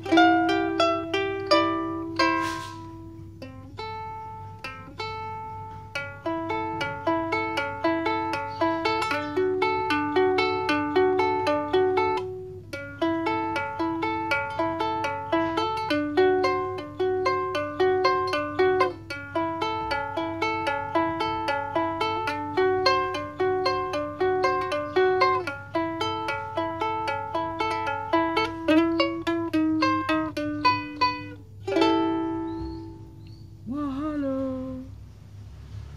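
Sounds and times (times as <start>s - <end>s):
ukulele fingerpicked notes: 0.0s - 34.9s.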